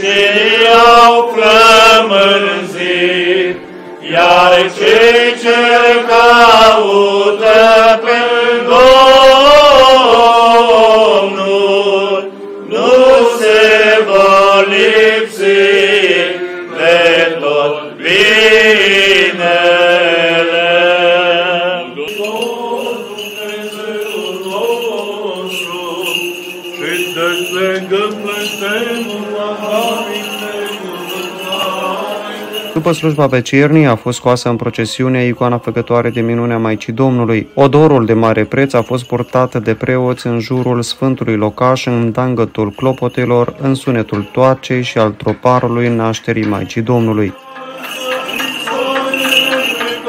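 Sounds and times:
liturgical chanting: 0:00.0 - 0:50.0.

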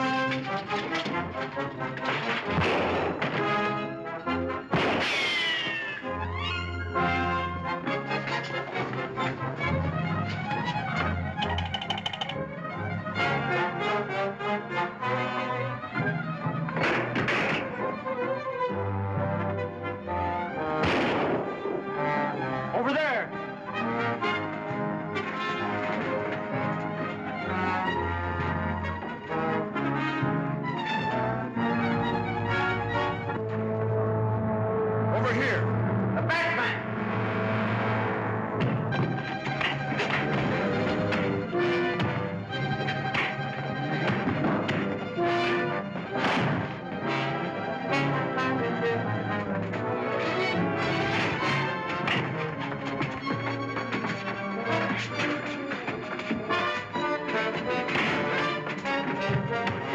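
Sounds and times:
orchestral music led by brass: 0:00.0 - 0:59.9.

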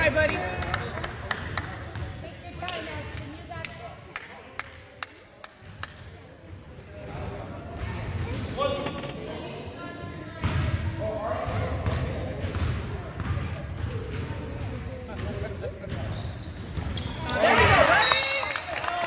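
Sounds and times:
spectators talking: 0:00.0 - 0:18.2.

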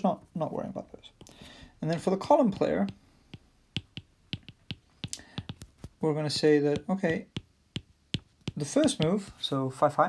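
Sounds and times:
stylus tapping tablet screen: 0:01.1 - 0:09.6.

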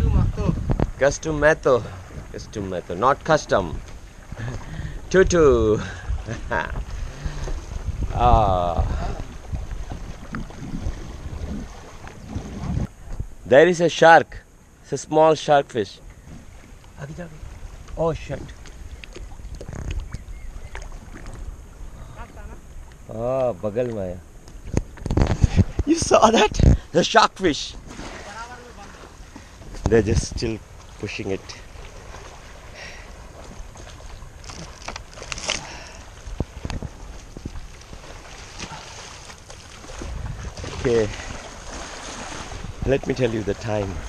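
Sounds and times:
wind rumble on microphone: 0:00.0 - 0:02.6, 0:03.5 - 0:13.5, 0:17.4 - 0:23.1, 0:24.3 - 0:26.9, 0:29.6 - 0:30.8, 0:36.0 - 0:38.7, 0:39.7 - 0:44.0
water sloshing around a boat: 0:00.0 - 0:13.4, 0:14.6 - 0:44.0
short sharp splashes: 0:27.8 - 0:29.2, 0:37.5 - 0:42.8.

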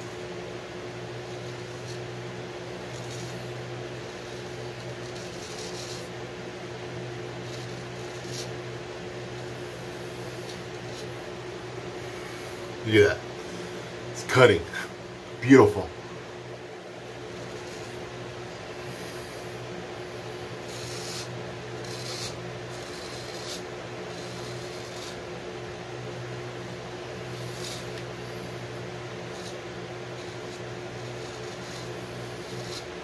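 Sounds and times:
steady low hum: 0:00.0 - 0:33.0
razor scraping stubble: 0:01.1 - 0:06.2, 0:07.0 - 0:14.5, 0:17.1 - 0:25.4, 0:26.0 - 0:33.0.

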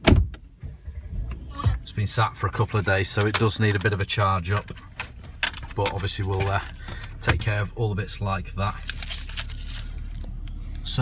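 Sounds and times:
car engine idling: 0:00.5 - 0:11.0.

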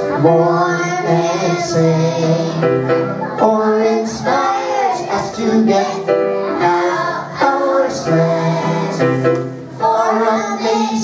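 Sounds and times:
child singing into a microphone: 0:03.2 - 0:07.6, 0:09.8 - 0:11.0.

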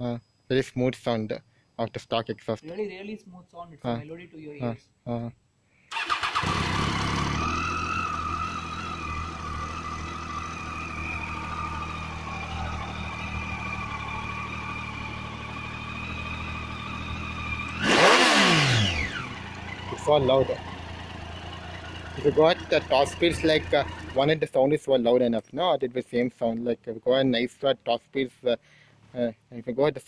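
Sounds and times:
motorcycle engine revving: 0:05.9 - 0:24.4
motorcycle engine starting and idling: 0:05.9 - 0:24.8.

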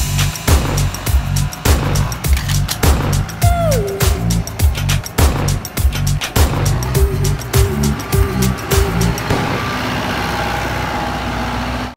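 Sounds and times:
tiller engine running: 0:00.0 - 0:11.9.

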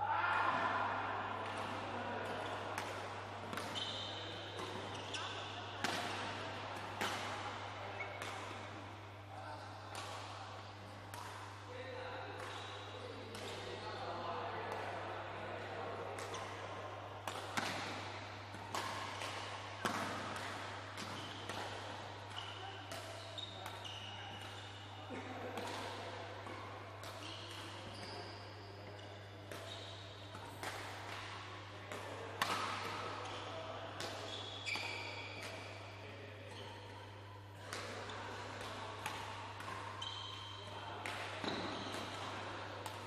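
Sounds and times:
racket hitting shuttlecock: 0:01.4 - 0:08.8, 0:09.9 - 0:11.6, 0:12.3 - 0:13.8, 0:16.0 - 0:24.8, 0:25.4 - 0:28.2, 0:29.4 - 0:33.4, 0:34.0 - 0:35.8, 0:37.6 - 0:43.0
shoe squeak on floor: 0:03.8 - 0:04.3, 0:34.3 - 0:35.3, 0:40.0 - 0:40.6
rackets striking shuttlecock: 0:17.2 - 0:24.7, 0:29.5 - 0:33.1.

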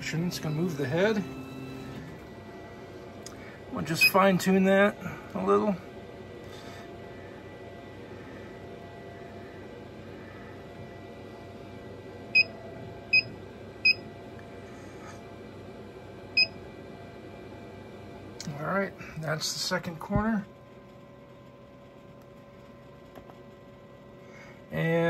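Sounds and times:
laser cutter humming: 0:00.0 - 0:14.6.

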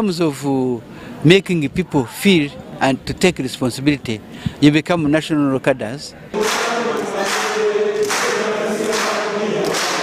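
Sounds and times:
group singing in unison: 0:06.3 - 0:10.0.

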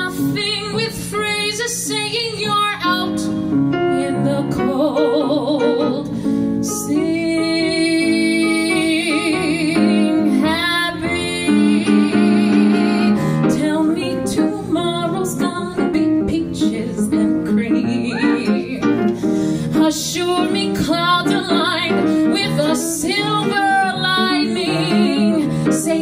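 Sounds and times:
grand piano: 0:00.0 - 0:26.0
woman belting a show tune: 0:15.2 - 0:19.0.

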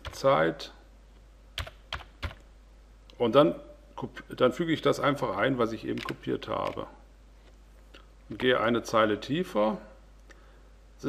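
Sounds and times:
computer keyboard keys struck: 0:01.6 - 0:02.4.

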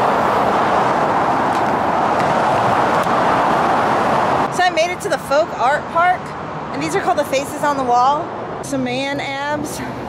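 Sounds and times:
freeway traffic rushing: 0:00.0 - 0:10.0.

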